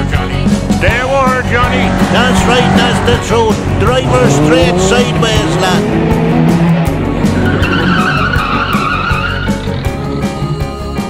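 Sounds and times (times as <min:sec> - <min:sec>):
song with steady beat: 0:00.0 - 0:08.2.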